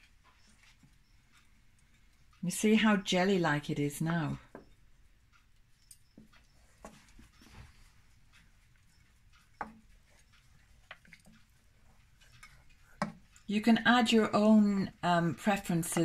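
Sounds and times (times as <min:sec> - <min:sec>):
wooden spoon stirring in a saucepan: 0:06.1 - 0:16.0
spoon knocking against pan: 0:09.4 - 0:09.9, 0:12.4 - 0:13.3.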